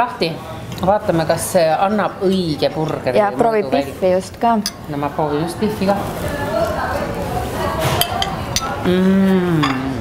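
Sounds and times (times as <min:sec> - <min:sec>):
cutlery clinking on plates: 0:07.8 - 0:08.8, 0:09.6 - 0:10.0
woman humming mmm: 0:08.8 - 0:10.0.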